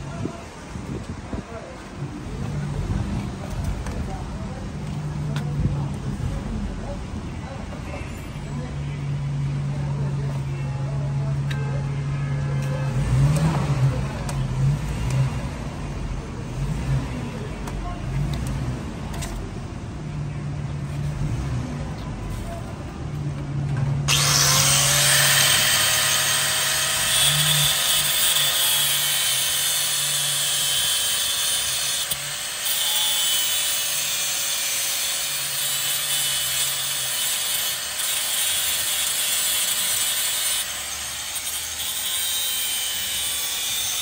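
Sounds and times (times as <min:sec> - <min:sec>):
angle grinder cutting steel: 0:24.1 - 0:44.0.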